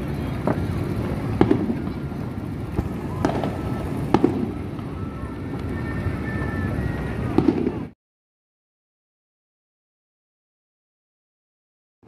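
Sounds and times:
fireworks bangs: 0.0s - 8.0s.

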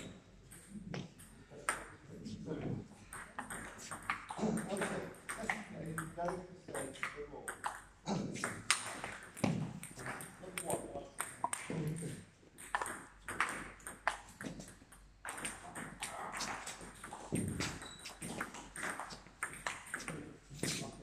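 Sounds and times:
voices in a hall: 0.7s - 12.3s, 15.5s - 18.4s.

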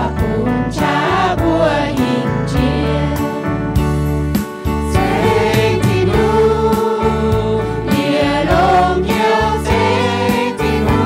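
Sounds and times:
choir singing a hymn: 0.0s - 3.8s, 4.6s - 11.0s
electric keyboard chords: 0.0s - 11.0s.

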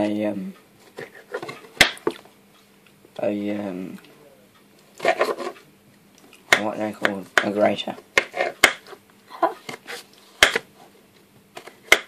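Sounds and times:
knives cutting on plastic board: 5.0s - 5.6s, 8.2s - 9.0s, 9.7s - 10.7s, 11.6s - 12.0s.

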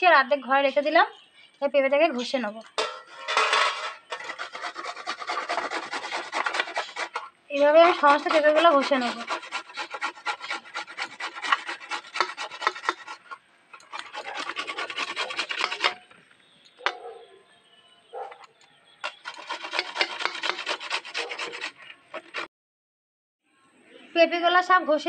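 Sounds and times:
papaya rasping on hand grater: 4.1s - 16.0s, 19.1s - 22.5s.

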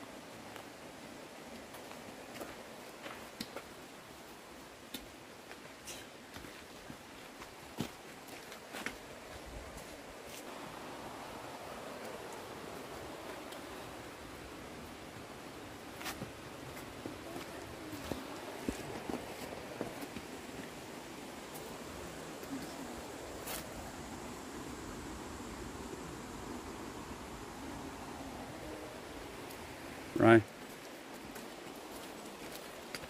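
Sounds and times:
outdoor background hiss: 0.0s - 33.0s
footsteps on stony trail: 1.5s - 10.5s, 15.8s - 20.8s, 30.5s - 33.0s.

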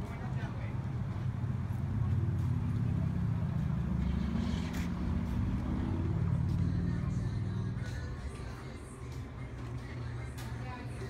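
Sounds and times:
motor vehicle engine rumbling: 0.0s - 11.0s.

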